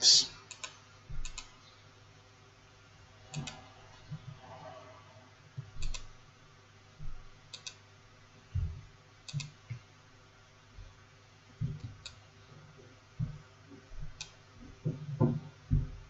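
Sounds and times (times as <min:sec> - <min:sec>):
computer mouse clicking: 0:00.5 - 0:01.5, 0:03.3 - 0:03.6, 0:05.8 - 0:06.1, 0:07.5 - 0:07.8, 0:09.2 - 0:09.6, 0:14.2 - 0:14.4.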